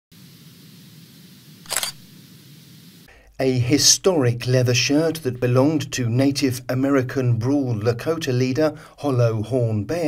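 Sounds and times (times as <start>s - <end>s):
camera shutter snap: 1.6s - 2.1s.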